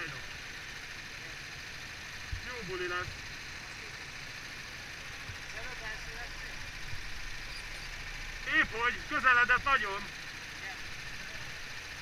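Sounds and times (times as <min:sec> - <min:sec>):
go-kart engines idling: 0:00.0 - 0:12.0.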